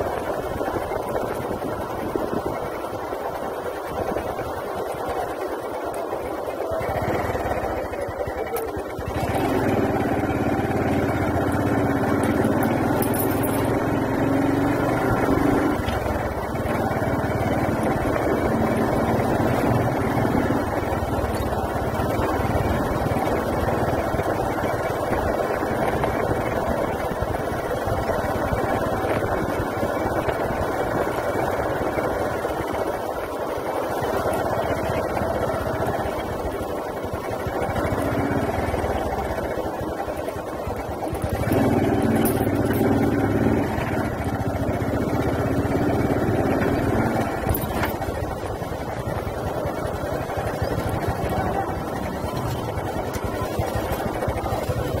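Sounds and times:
motorbike engine running: 0.0 - 55.0
road and wind noise: 0.0 - 55.0.

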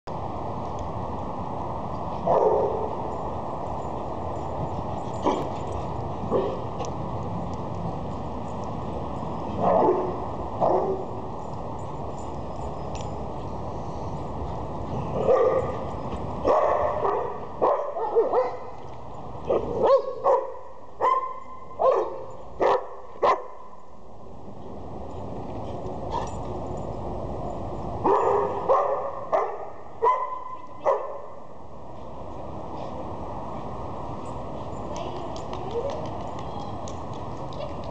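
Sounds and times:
steady background noise: 0.1 - 37.9
dog barking: 15.2 - 15.7, 16.5 - 18.7, 19.5 - 23.5, 28.1 - 31.3.

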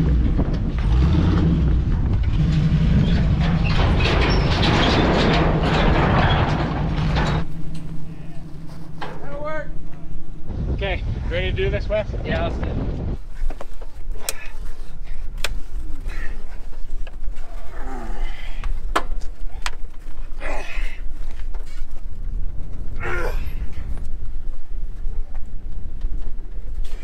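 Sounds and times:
low rumble: 0.0 - 26.8
men grunting and shouting: 20.4 - 21.0, 23.0 - 23.9.

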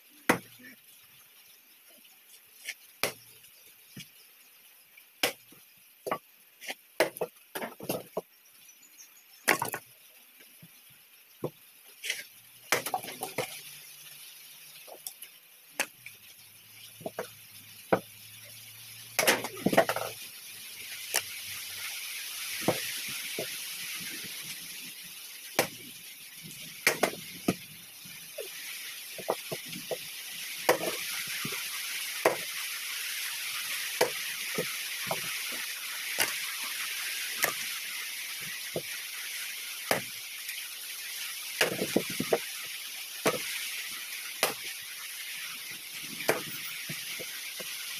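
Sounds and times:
steady hiss: 0.0 - 47.9
machete chopping firewood logs: 7.0 - 8.0, 9.5 - 9.8, 12.1 - 13.2, 19.2 - 20.1, 26.9 - 27.6, 30.7 - 31.0, 32.2 - 32.5, 41.6 - 42.0, 44.4 - 44.6.

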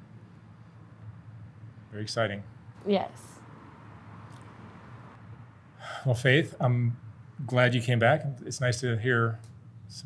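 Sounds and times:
person breathing: 5.8 - 6.1.

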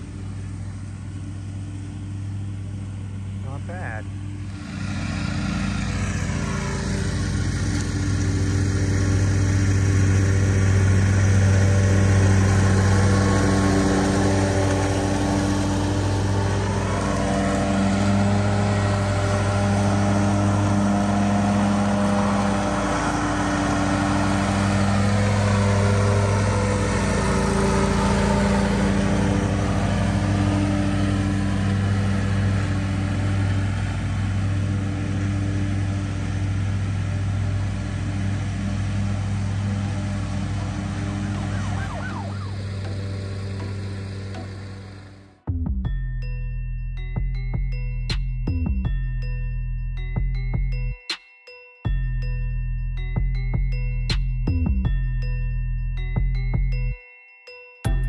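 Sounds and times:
lawn mower engines running: 0.0 - 45.5.

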